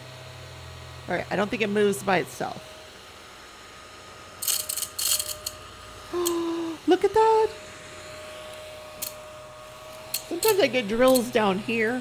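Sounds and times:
small vacuum on wooden table: 0:00.0 - 0:12.0
rattles and clicks of beads: 0:04.4 - 0:05.6, 0:10.0 - 0:11.4.

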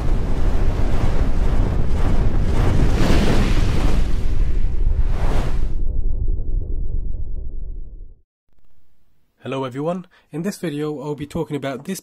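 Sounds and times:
rushing rumble and whoosh: 0:00.0 - 0:08.2.

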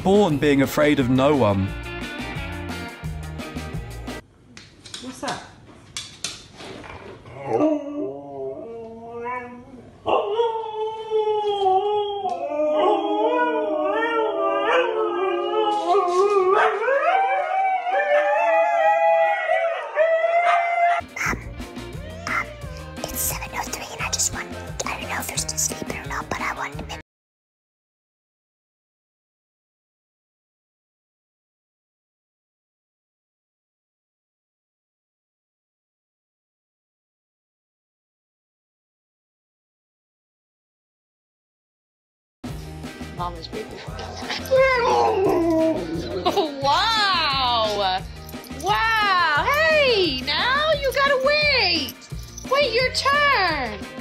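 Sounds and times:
background music with a beat: 0:01.5 - 0:04.2, 0:42.5 - 0:54.0
husky howling and yowling: 0:07.3 - 0:21.0, 0:44.0 - 0:47.1.

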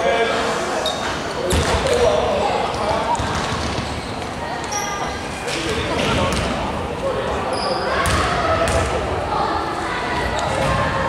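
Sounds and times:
indistinct voices echoing: 0:00.0 - 0:11.0.

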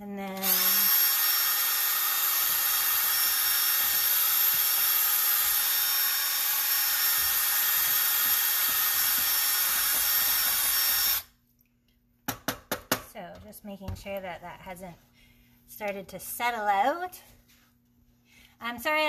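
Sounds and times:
cordless drill whirring: 0:00.4 - 0:11.3.

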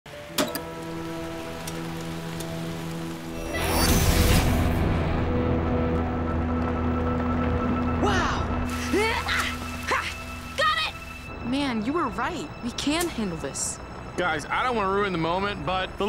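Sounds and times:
rain: 0:00.1 - 0:16.0
synth music: 0:00.1 - 0:16.0.

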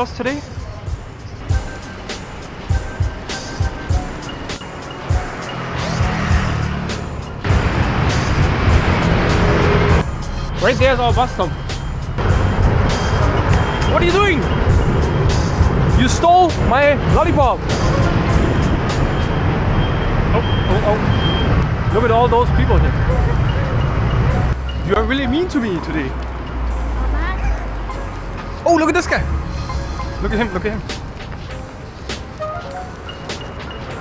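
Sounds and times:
background music: 0:00.0 - 0:19.5, 0:22.6 - 0:34.0
buses and scooters passing: 0:00.0 - 0:34.0
city traffic hum: 0:00.0 - 0:34.0.

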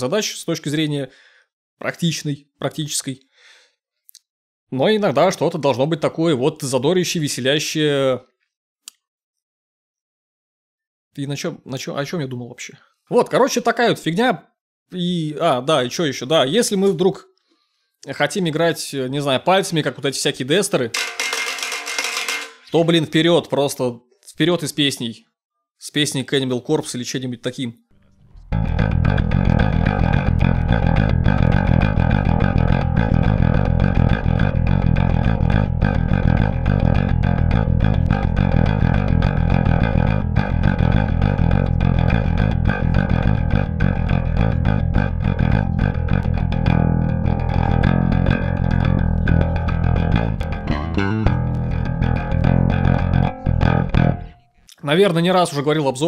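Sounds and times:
electric bass riffing: 0:28.0 - 0:54.4.

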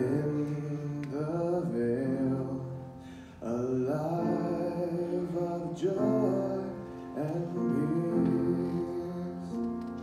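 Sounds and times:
quiet steady accompaniment: 0:00.0 - 0:10.0
young man singing slowly: 0:00.0 - 0:10.0.

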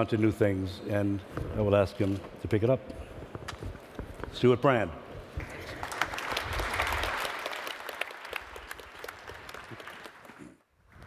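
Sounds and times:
audience applauding: 0:05.4 - 0:10.6.

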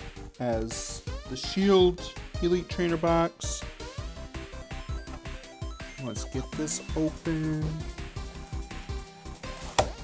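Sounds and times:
background music with steady beat: 0:00.0 - 0:10.0
cardboard lid snapping open: 0:09.6 - 0:10.0.

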